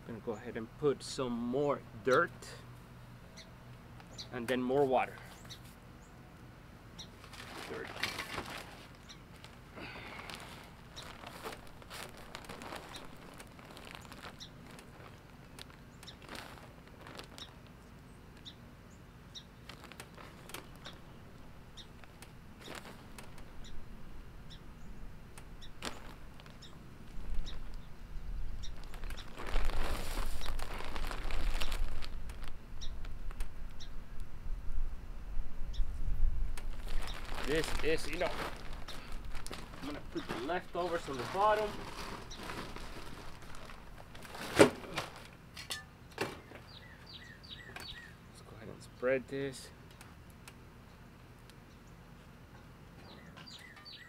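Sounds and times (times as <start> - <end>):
birds chirping: 1.9 - 30.8, 31.4 - 34.0, 36.8 - 44.2, 46.4 - 49.6, 52.9 - 54.0
plastic bag crinkling: 7.2 - 17.8, 19.6 - 21.0, 22.0 - 23.5, 25.8 - 27.8, 28.6 - 32.6, 36.6 - 45.3
soil scooped by hand: 29.3 - 32.0
heavy bag thumps: 44.3 - 45.3.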